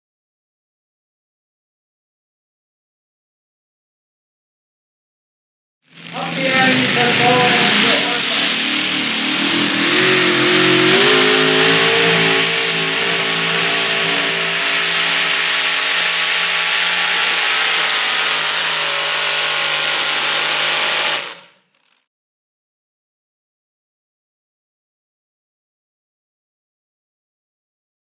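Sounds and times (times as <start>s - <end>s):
tractor engine running hard: 5.9s - 21.6s.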